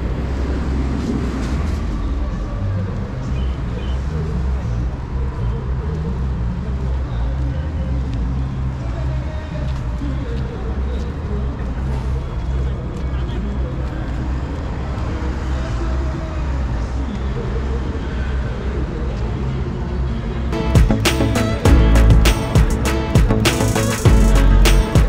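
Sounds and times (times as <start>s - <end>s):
passers-by talking: 0.0s - 25.0s
road traffic rumble: 0.0s - 25.0s.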